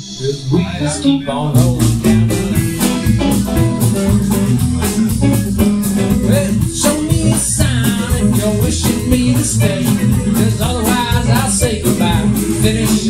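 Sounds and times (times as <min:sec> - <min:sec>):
guitar: 0:00.0 - 0:13.0
plucked upright bass: 0:00.0 - 0:13.0
steady drum beat: 0:01.6 - 0:13.0.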